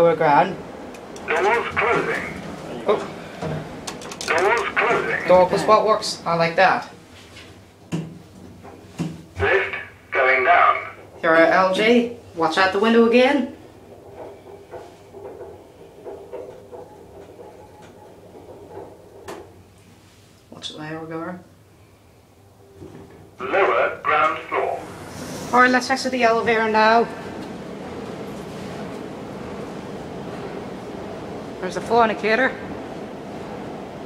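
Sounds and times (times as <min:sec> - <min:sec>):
lift humming: 0:00.0 - 0:06.6, 0:09.4 - 0:20.0, 0:22.4 - 0:34.0
faint clicks and rattles: 0:03.8 - 0:04.8.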